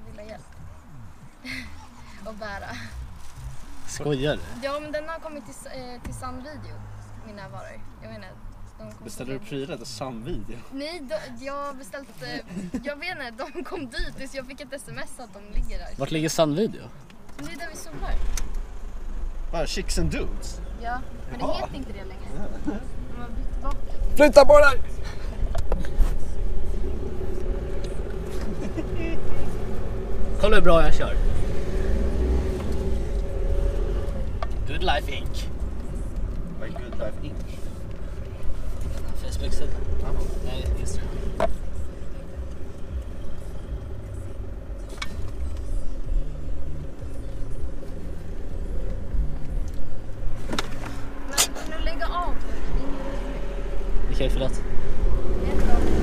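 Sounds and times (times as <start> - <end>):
car engine rumbling: 0.0 - 56.0.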